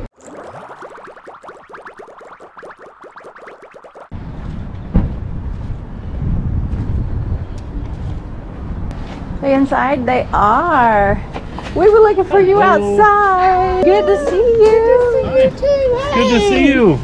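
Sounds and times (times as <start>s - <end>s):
wind: 4.1s - 17.0s.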